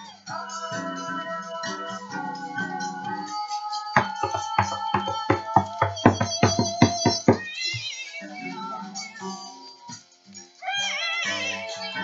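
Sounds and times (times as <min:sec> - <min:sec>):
man singing: 0:00.3 - 0:09.0
acoustic guitar strumming: 0:04.0 - 0:07.9.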